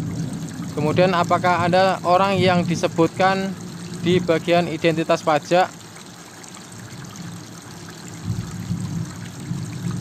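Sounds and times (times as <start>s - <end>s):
running water: 0.0s - 10.0s.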